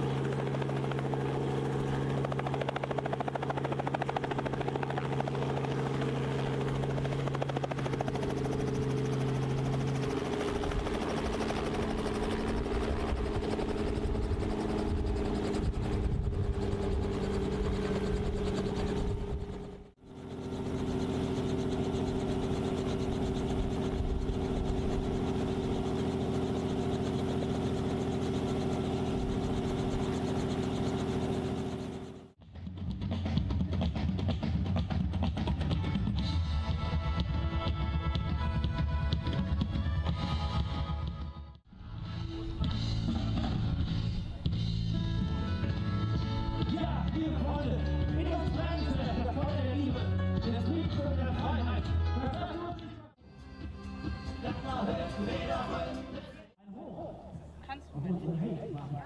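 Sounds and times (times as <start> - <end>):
helicopter running: 0.0 - 56.5.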